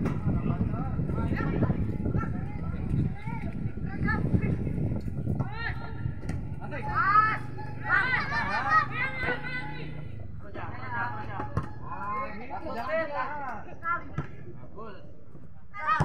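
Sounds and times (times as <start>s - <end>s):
voices shouting outdoors: 0.0s - 14.2s, 15.6s - 16.0s.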